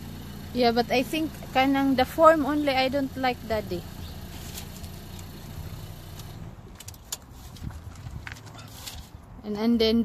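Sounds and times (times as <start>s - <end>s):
car engine humming: 0.0s - 9.9s.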